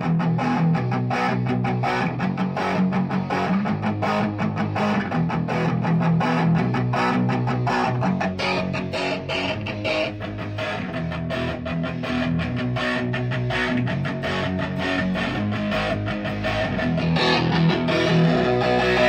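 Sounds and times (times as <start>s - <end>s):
electric guitars strumming chords: 0.0s - 19.0s.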